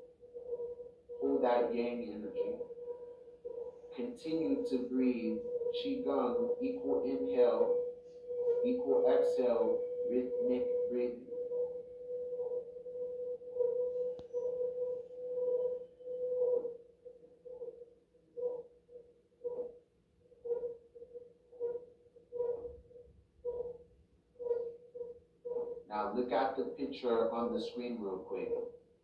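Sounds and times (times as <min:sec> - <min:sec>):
meditation tone through speaker: 0:00.0 - 0:23.8, 0:24.4 - 0:28.8.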